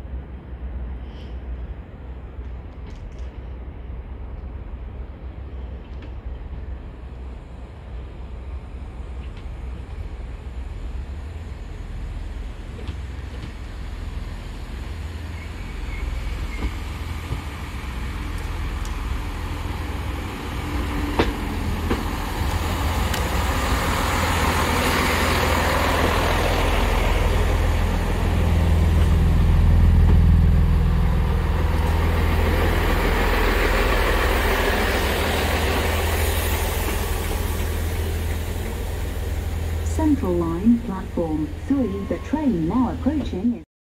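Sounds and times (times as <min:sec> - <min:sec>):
train engine approaching: 0:00.0 - 0:43.6.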